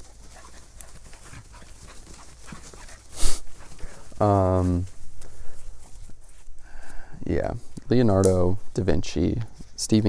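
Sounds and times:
dog panting: 0.0 - 4.3
rustling in undergrowth: 0.0 - 10.0.

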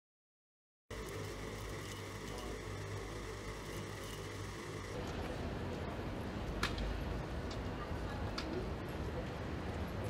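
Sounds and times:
electric blower motor humming: 0.9 - 5.0.

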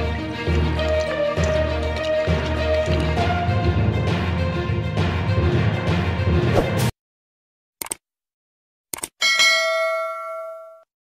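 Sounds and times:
notification bell ding: 9.2 - 10.9.

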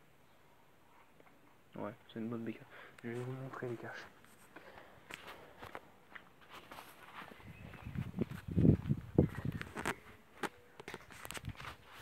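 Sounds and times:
footsteps on gravel: 3.1 - 12.0.

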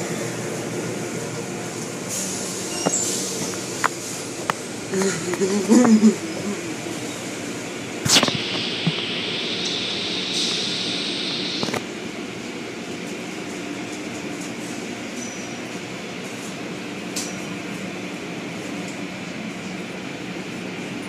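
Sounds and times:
hissing spray: 8.0 - 11.8
sharp knock: 8.1 - 11.8
water spray: 8.1 - 11.8.

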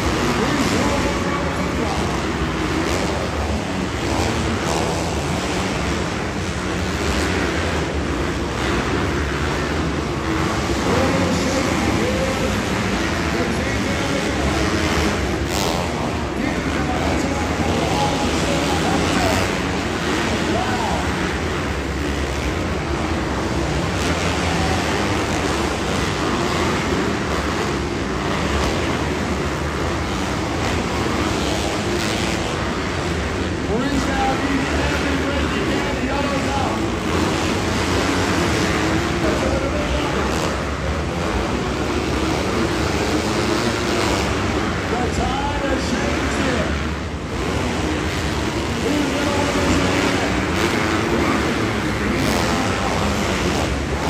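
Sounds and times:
dirt bike engines revving: 0.0 - 54.0.

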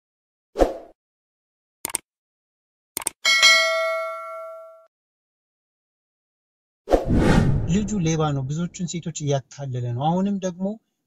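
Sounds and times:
notification bell ding: 3.3 - 4.9.

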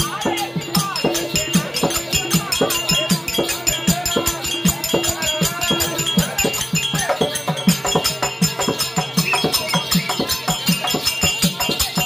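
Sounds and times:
hand drum beating: 0.0 - 12.0.

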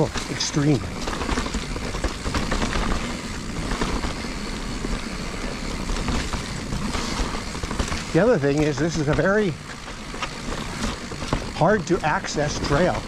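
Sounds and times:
bike rattling: 0.0 - 13.0
bike tyres rumbling on dirt trail: 0.0 - 13.0.

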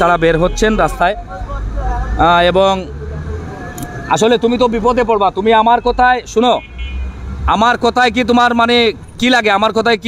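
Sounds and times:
man speaking: 0.0 - 6.6.

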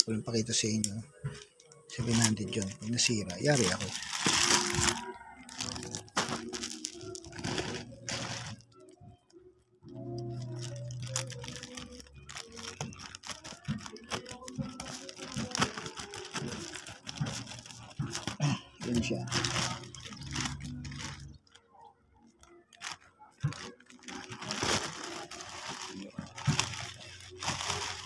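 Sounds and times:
plastic bag rustling: 1.9 - 9.0, 9.9 - 21.6, 22.7 - 28.0.

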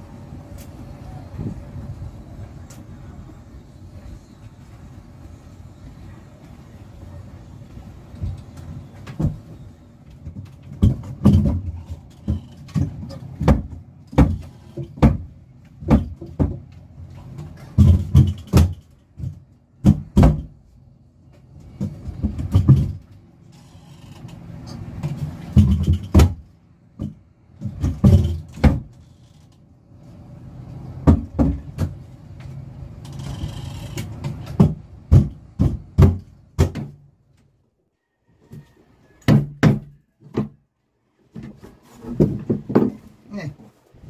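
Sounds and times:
hand tools striking wood: 10.2 - 20.5, 31.0 - 32.0, 34.0 - 37.0, 39.3 - 40.6, 41.4 - 43.1
wooden cabinet doors knocking: 34.6 - 36.9.

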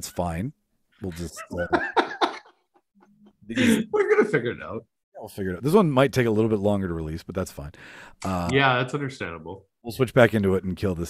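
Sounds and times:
man laughing: 1.2 - 4.8.

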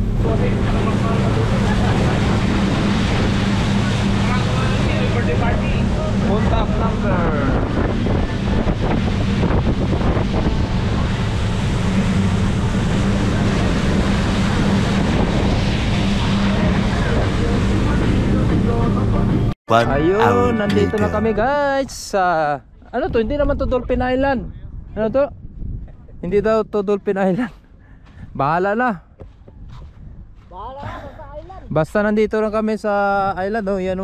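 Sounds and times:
water rushing along hull: 0.0 - 19.4
wind buffeting microphone: 0.0 - 19.4, 22.7 - 32.7
motorboat engine humming: 0.0 - 19.5.

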